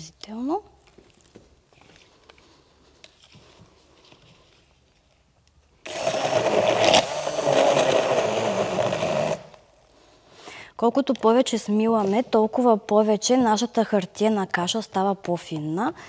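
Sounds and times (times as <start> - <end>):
immersion blender grinding pulp: 5.8 - 9.7.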